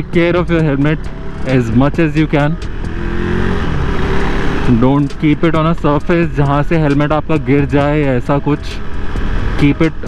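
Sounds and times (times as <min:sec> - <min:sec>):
man talking: 0:00.0 - 0:02.7, 0:04.6 - 0:08.8, 0:09.6 - 0:10.0
motorcycle engine cruising: 0:00.0 - 0:10.0
wind and road noise: 0:00.0 - 0:10.0.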